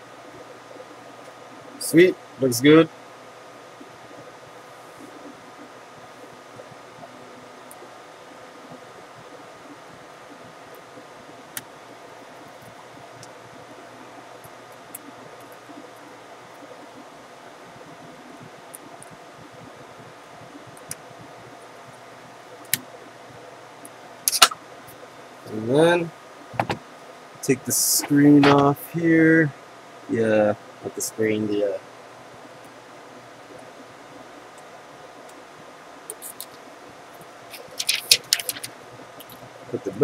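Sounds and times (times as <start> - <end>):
fan humming with faint whine: 0.0 - 40.0.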